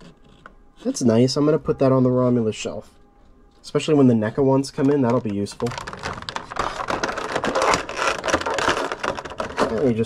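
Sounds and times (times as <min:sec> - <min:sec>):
plastic packaging crinkling: 0:04.5 - 0:10.0.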